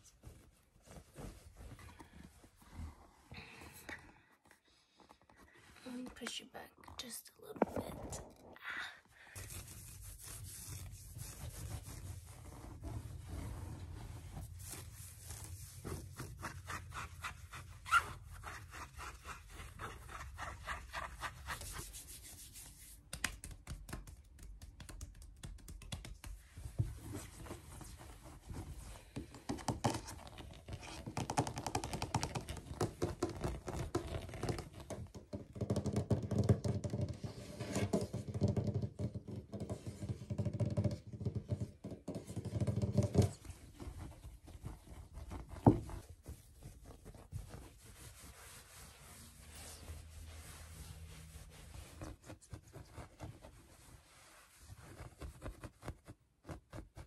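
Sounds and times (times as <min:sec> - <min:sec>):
fingers tapping and scratching rug: 0:29.1 - 0:47.6.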